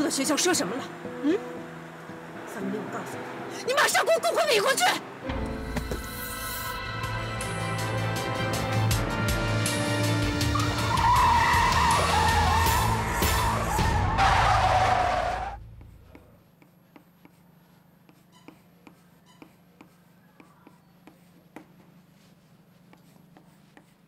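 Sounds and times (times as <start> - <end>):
tense drama music: 0.0 - 16.2
car tyres screeching: 10.5 - 15.7
chalk tapping on blackboard: 15.8 - 24.0.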